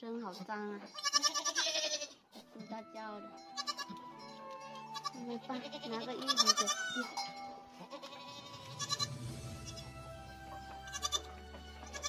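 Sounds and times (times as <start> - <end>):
goats bleating: 0.9 - 2.5, 3.5 - 9.9, 10.8 - 12.0.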